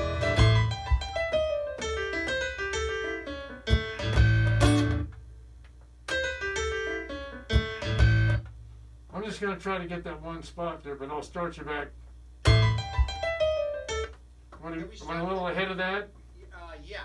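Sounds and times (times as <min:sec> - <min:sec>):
piano melody with bass notes: 0:00.0 - 0:05.2, 0:06.1 - 0:08.6, 0:12.4 - 0:14.2.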